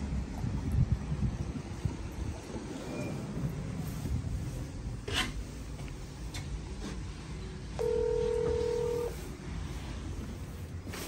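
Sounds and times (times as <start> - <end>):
intercom electronic call tone: 7.8 - 9.2.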